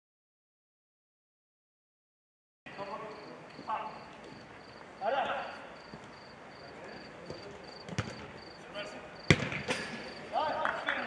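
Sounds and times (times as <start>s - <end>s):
football kicked with a thud: 7.3s - 8.3s, 9.3s - 9.8s.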